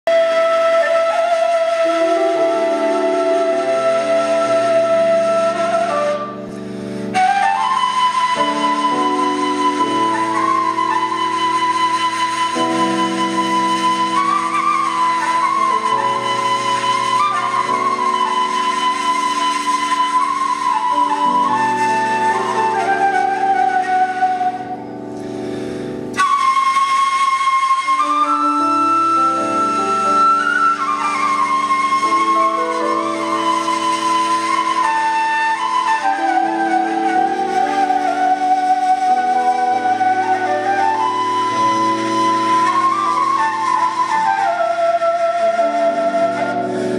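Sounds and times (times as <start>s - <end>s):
flute playing folk melody: 0.0s - 46.9s.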